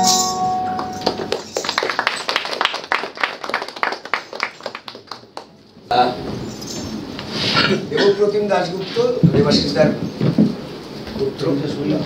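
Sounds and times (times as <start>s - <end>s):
audience clapping: 0.7s - 5.7s.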